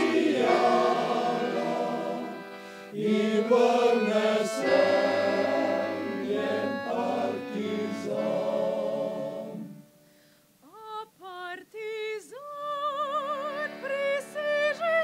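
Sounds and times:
men's choir singing: 0.0 - 9.8
solo voice singing with vibrato: 10.6 - 15.0.

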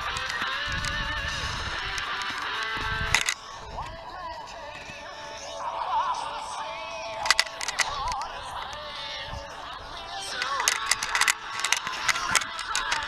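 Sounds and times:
background music wavering melody: 0.0 - 13.0
sharp clicks and knocks: 1.9 - 3.4, 7.2 - 8.8, 10.4 - 13.0.

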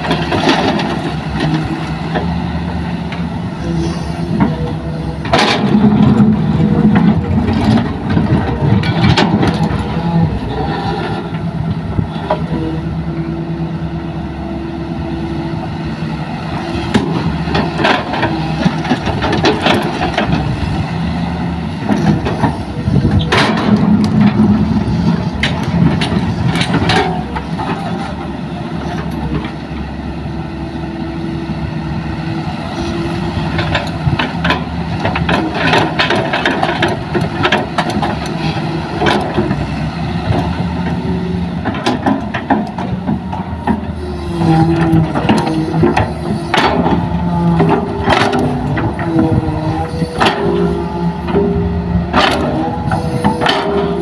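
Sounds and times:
excavator diesel engine under load: 0.0 - 54.0.

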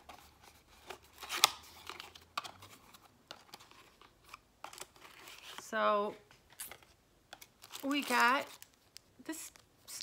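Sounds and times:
packaging rustling: 0.0 - 5.7, 6.5 - 9.1.

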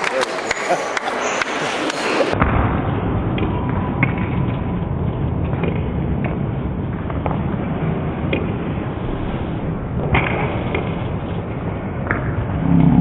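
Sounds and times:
loud low rumbling noise: 2.3 - 13.0.

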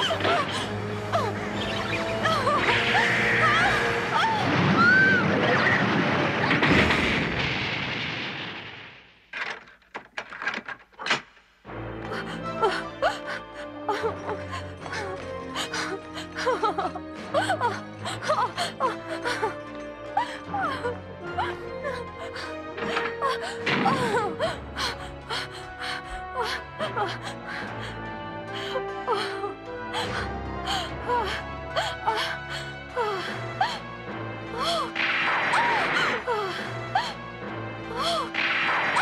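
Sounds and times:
background music with sustained notes: 0.0 - 7.2, 11.6 - 39.0
sharp cracks: 4.4 - 11.4, 34.9 - 36.3, 38.3 - 39.0
woman gasping and whimpering: 20.2 - 33.9, 37.9 - 38.4.

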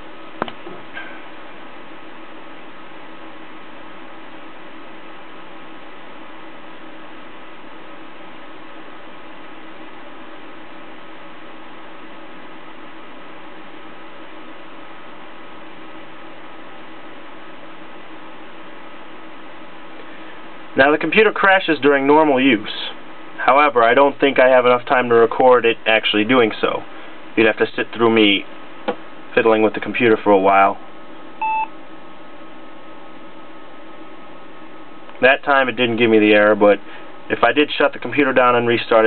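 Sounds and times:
laptop fan humming: 0.0 - 39.0.

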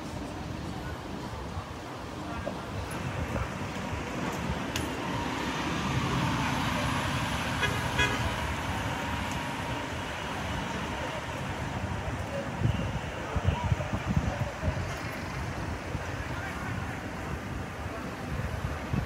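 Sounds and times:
vehicle passing: 4.0 - 11.0.

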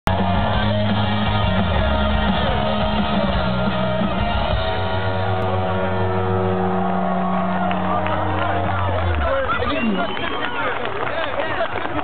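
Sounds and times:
drums: 0.0 - 12.0
bass guitar: 0.1 - 10.3
distorted electric guitar: 0.1 - 10.3.

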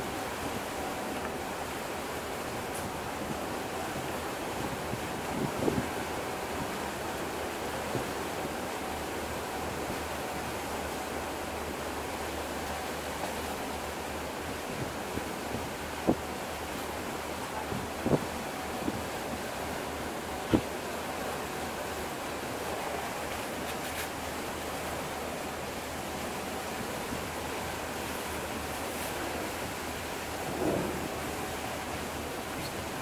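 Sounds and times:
water rushing: 0.0 - 33.0
wind: 0.0 - 33.0.

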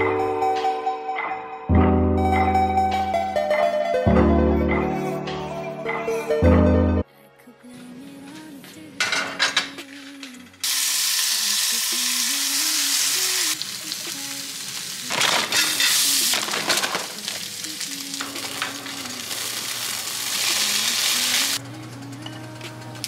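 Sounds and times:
soft background music: 0.0 - 11.9
food sizzling in a skillet: 10.6 - 21.6.

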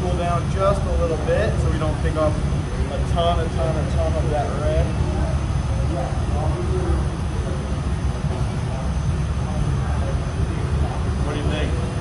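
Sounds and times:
faint voices: 0.0 - 12.0
low roar of burners and blowers: 0.0 - 12.0.

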